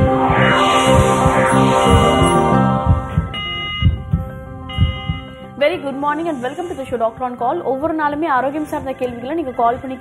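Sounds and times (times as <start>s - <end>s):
held electronic tones: 0.0s - 5.4s
low heartbeat-like thumps: 0.0s - 5.4s.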